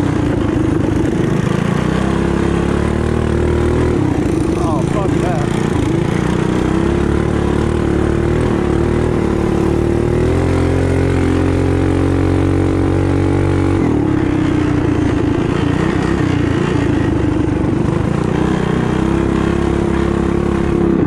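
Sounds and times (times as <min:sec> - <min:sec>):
mini bike engine revving: 0:00.0 - 0:21.0.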